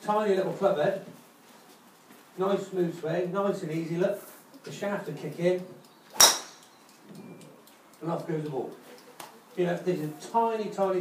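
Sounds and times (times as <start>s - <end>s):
golf club striking ball: 6.1s - 6.7s.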